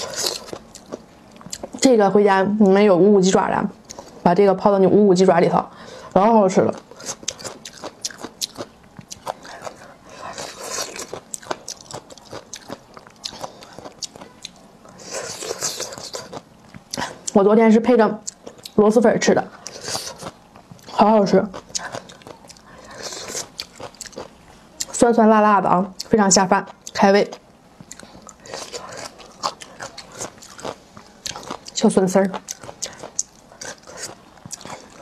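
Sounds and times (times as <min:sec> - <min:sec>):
crunchy chewing: 0:00.0 - 0:01.8, 0:06.7 - 0:17.4, 0:19.5 - 0:25.0, 0:27.8 - 0:35.0.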